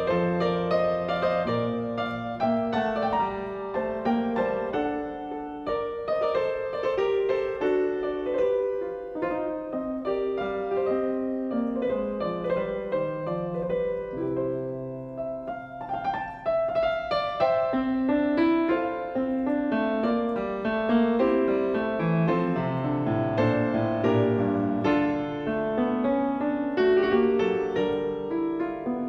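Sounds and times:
grand piano classical piece: 0:00.0 - 0:29.0.

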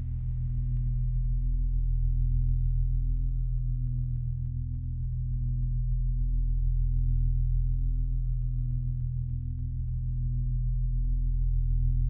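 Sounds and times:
low layered hum with soft pulse: 0:00.0 - 0:12.0.

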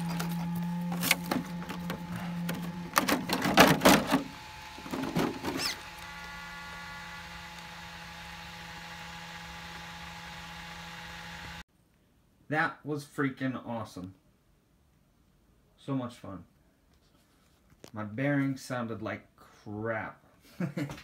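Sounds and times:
electric motor hum: 0:00.0 - 0:11.6
plastic clattering and knocks: 0:01.0 - 0:05.6.

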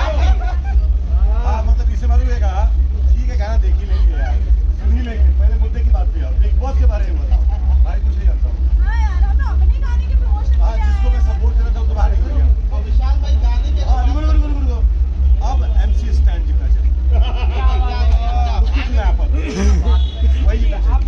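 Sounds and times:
crowd chatter: 0:00.0 - 0:21.0
loud low rumble: 0:00.0 - 0:21.0
man talking: 0:11.0 - 0:21.0.

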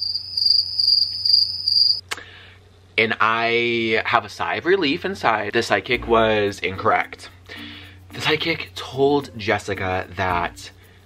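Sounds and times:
cricket chirping: 0:00.0 - 0:02.0.

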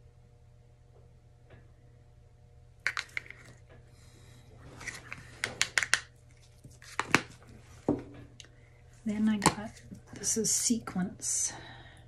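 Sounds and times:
plastic cups clattering: 0:02.9 - 0:03.6, 0:04.8 - 0:06.1.

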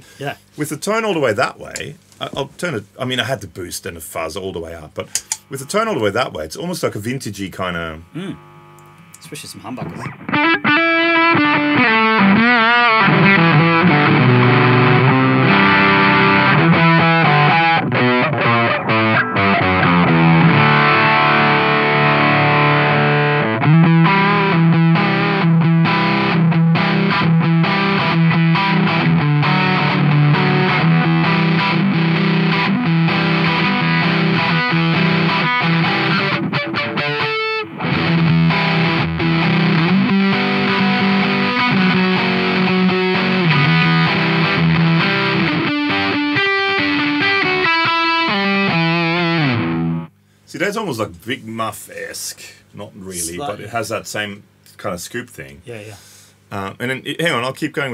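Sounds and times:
fuzzed electric guitar chords: 0:07.8 - 0:09.2, 0:09.8 - 0:50.4.

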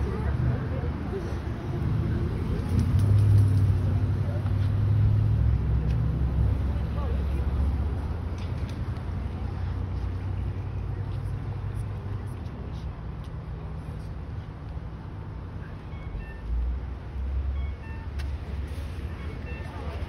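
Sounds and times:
motor vehicle rumble: 0:00.0 - 0:20.0.

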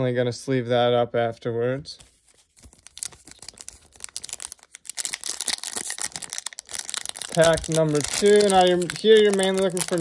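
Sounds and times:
foil wrapper crinkling and tearing: 0:02.6 - 0:10.0.

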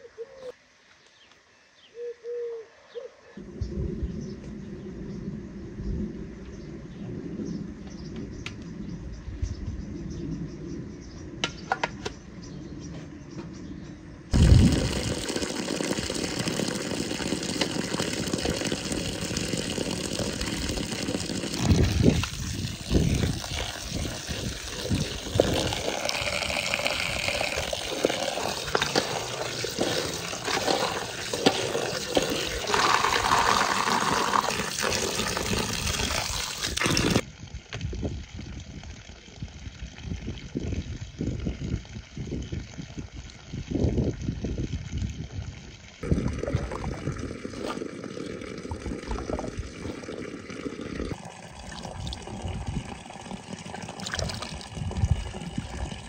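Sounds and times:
water splashing and trickling: 0:14.3 - 0:56.0
running water rushing: 0:14.4 - 0:37.2, 0:46.0 - 0:56.0.

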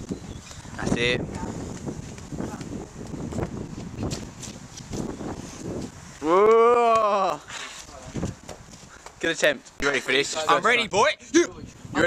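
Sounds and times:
wind buffeting microphone: 0:00.0 - 0:06.8, 0:07.8 - 0:09.2, 0:10.3 - 0:12.0.

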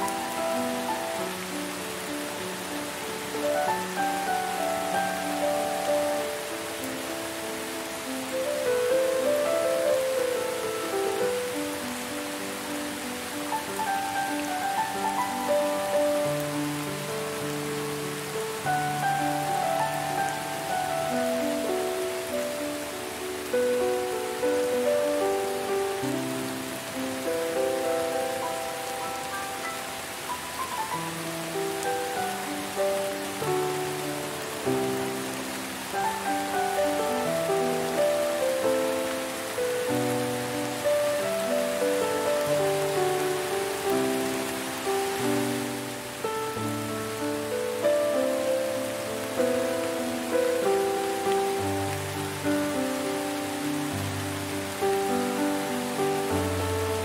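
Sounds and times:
slow calm melodic music: 0:00.0 - 0:57.0
steady rain falling: 0:00.0 - 0:57.0.

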